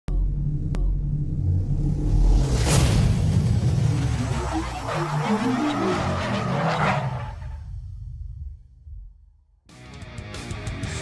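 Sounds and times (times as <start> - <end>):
deep steady rumble: 0.1 - 4.7.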